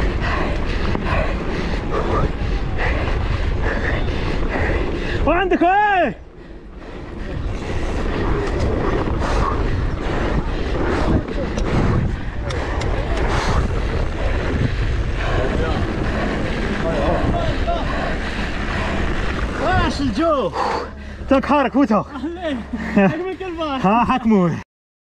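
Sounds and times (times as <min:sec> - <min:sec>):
bike tyre noise on dirt: 0:00.0 - 0:21.6
wind rushing over microphone: 0:00.0 - 0:24.1.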